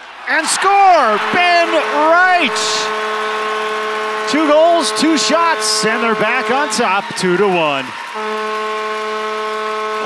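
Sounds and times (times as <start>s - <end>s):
arena goal horn blast: 0.6s - 10.0s.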